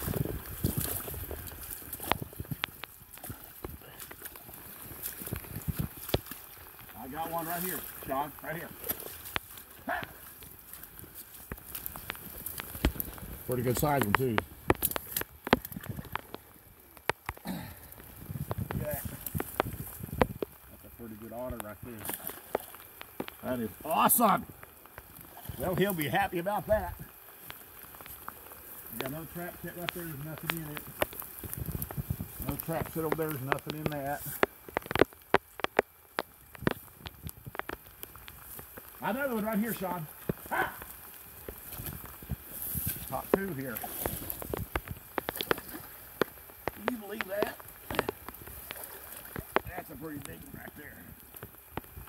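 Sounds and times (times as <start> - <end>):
dry grass crackling: 0.0 - 52.0
person muttering: 17.4 - 17.9.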